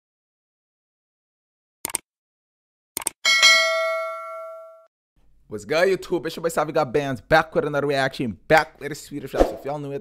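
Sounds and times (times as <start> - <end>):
notification bell chime: 3.3 - 4.8.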